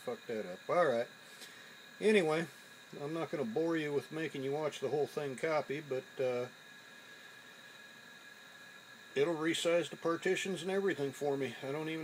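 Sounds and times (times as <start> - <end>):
faint high steady tones: 0.0 - 12.0
faint steady hiss: 0.0 - 12.0.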